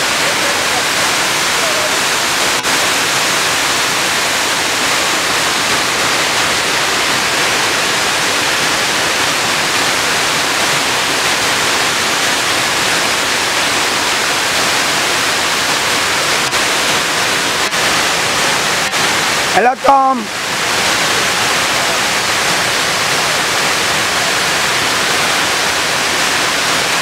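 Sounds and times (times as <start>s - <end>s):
water rushing over rock ledges: 0.0s - 27.0s.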